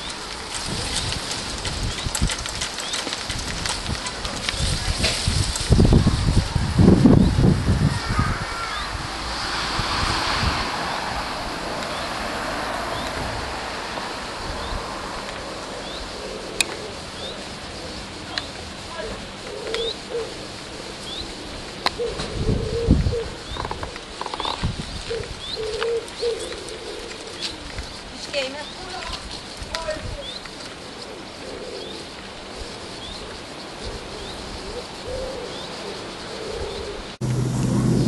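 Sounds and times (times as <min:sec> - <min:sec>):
steady rushing noise: 0:00.0 - 0:25.6, 0:37.0 - 0:38.0
bird hooting: 0:15.4 - 0:27.8, 0:30.8 - 0:37.1
pigeon cooing: 0:15.4 - 0:28.3, 0:30.7 - 0:37.2.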